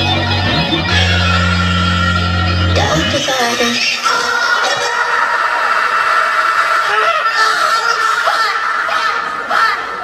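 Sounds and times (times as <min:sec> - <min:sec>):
crowd screaming and cheering: 0:00.0 - 0:10.0.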